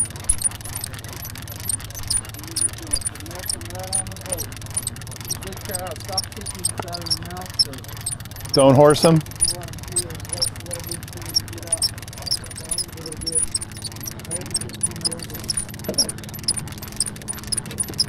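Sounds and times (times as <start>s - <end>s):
boat engine idling: 0.0s - 18.0s
fishing reel ticking: 0.0s - 18.0s.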